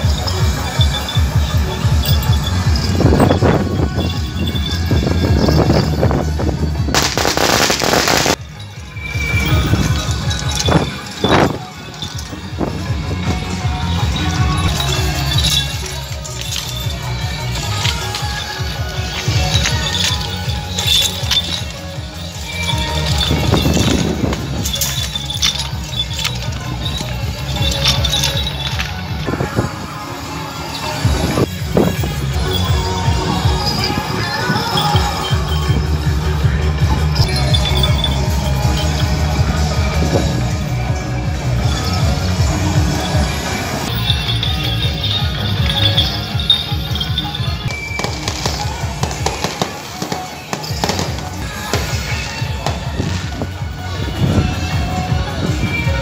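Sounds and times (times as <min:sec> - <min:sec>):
drums gongs and cymbals rhythm: 0:00.0 - 0:56.0.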